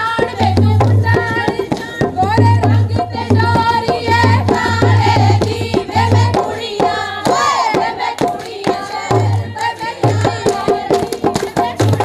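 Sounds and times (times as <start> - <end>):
women singing: 0.0 - 12.0
hand-clapping: 7.3 - 12.0.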